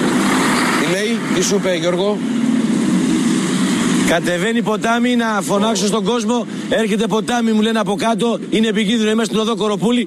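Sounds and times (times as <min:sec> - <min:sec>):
dump truck diesel engine drone: 0:00.0 - 0:10.0.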